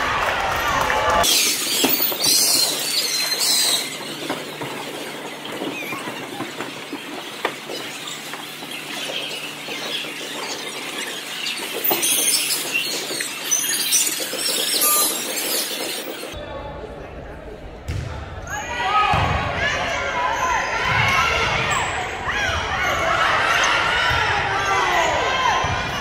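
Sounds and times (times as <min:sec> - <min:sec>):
sneakers squeaking on court: 0:01.2 - 0:16.4.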